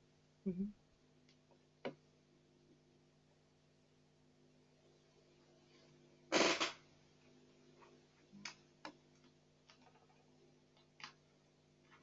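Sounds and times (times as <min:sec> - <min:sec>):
low steady hum: 0:00.0 - 0:12.0
loud burst of noise: 0:06.3 - 0:06.8.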